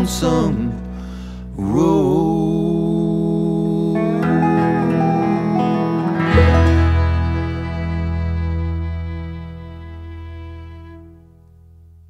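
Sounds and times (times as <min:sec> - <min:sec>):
acoustic bluegrass string band: 0:04.2 - 0:11.1.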